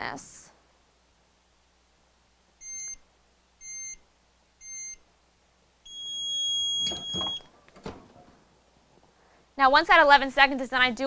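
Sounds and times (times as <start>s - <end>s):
heat press timer beeping: 5.9s - 7.5s
press opening clatter: 6.8s - 8.4s.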